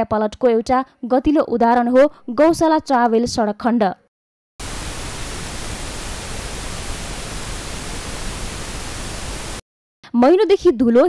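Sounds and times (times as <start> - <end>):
steady static hiss: 4.6 - 9.6.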